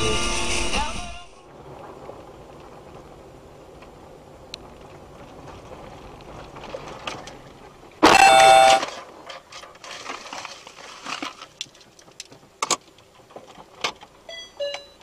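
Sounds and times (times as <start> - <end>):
car tyre and engine rumble: 0.0 - 15.0
car horn: 8.0 - 9.0.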